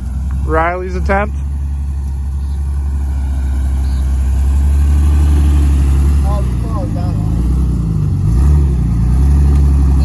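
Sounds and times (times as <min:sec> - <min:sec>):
engine running under load: 0:00.0 - 0:10.0.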